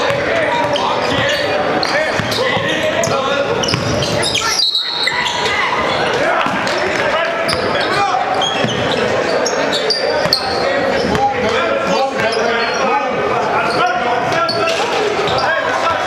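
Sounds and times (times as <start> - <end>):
sneaker squeaks: 0.0 - 13.0, 13.6 - 15.6
spectator chatter: 0.0 - 16.0.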